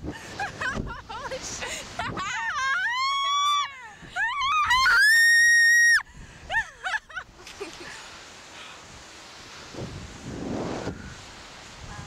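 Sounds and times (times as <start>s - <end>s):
people screaming: 2.4s - 6.0s.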